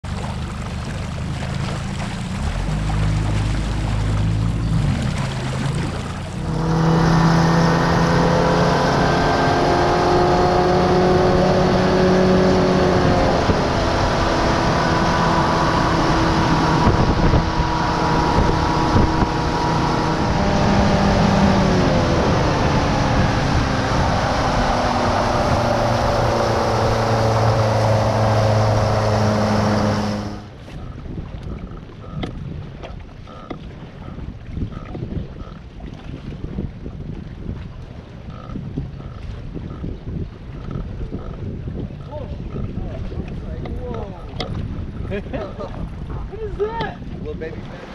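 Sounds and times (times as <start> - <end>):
outboard motor running: 0.0 - 47.9
water and wind rushing: 0.0 - 47.9.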